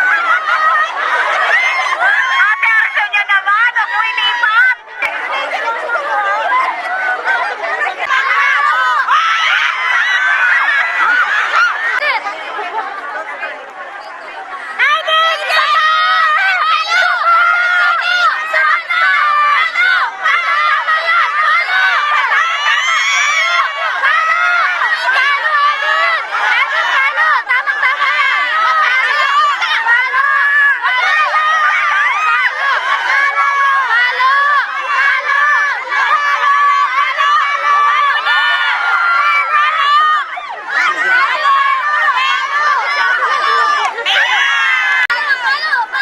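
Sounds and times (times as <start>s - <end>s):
crowd shouting and screaming: 0.0s - 46.0s.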